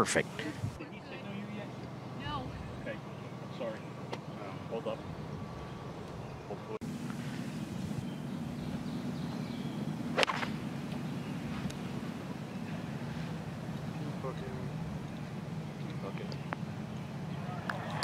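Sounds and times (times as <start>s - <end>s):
outdoor background noise: 0.0s - 18.0s
golf club striking ball: 8.4s - 12.1s.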